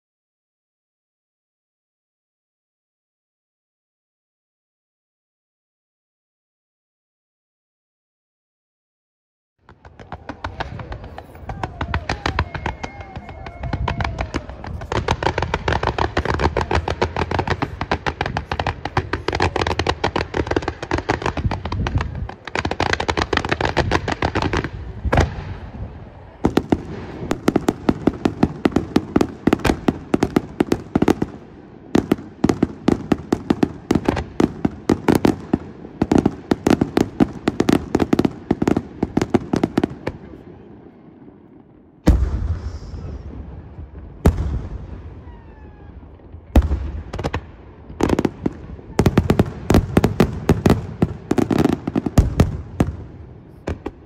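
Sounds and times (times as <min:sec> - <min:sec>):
fireworks bangs: 0:09.6 - 0:54.0.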